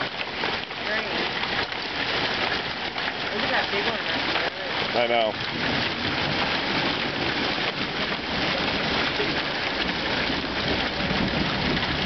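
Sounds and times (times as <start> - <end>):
hail and rain pattering: 0.0 - 12.0.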